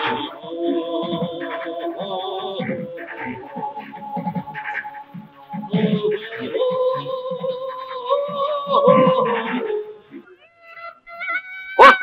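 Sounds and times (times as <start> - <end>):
pitched voice cry: 5.8 - 12.0.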